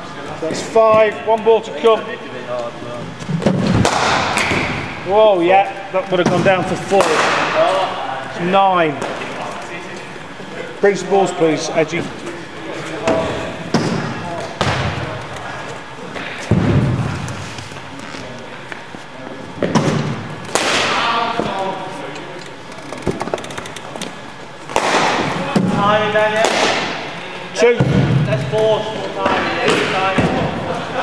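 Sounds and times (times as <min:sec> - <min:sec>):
voices in background: 0:04.4 - 0:31.0
balls bouncing on hard floor: 0:13.0 - 0:15.2.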